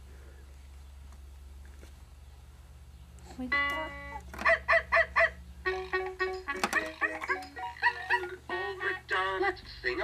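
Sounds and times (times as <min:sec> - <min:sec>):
electronic toy animal calls: 0:03.6 - 0:08.4.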